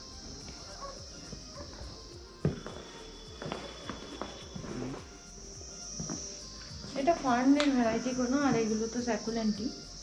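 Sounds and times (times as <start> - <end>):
footsteps on tiled floor: 0.0 - 8.9
steady high hiss: 0.0 - 10.0.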